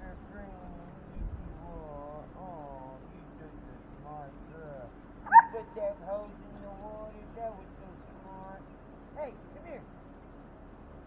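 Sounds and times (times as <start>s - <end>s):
dog yelping: 5.2s - 5.8s.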